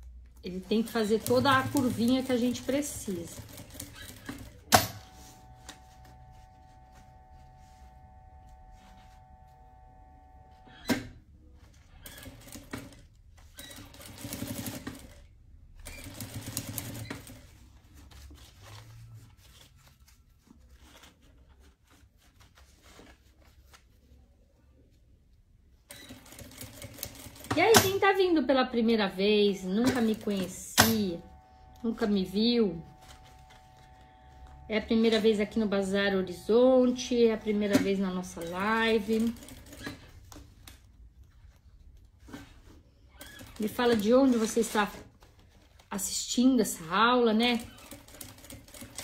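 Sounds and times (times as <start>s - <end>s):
sewing machine stitching: 0.7s - 5.8s, 11.9s - 17.5s, 29.7s - 40.2s, 47.4s - 49.0s.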